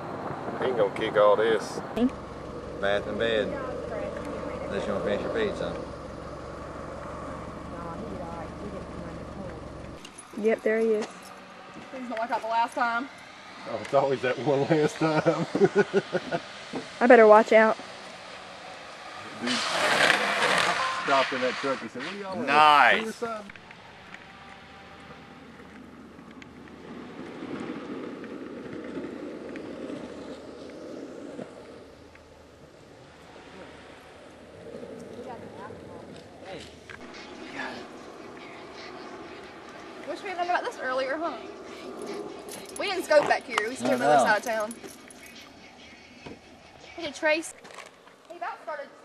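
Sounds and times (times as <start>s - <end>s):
steady low hum: 0.0s - 19.0s, 23.2s - 47.6s
longboard wheels rolling on asphalt: 0.0s - 49.0s.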